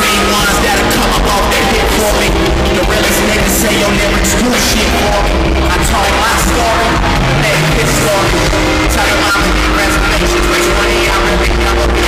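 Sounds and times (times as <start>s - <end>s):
heavy bass: 0.0s - 12.0s
hip-hop concert music: 0.0s - 12.0s.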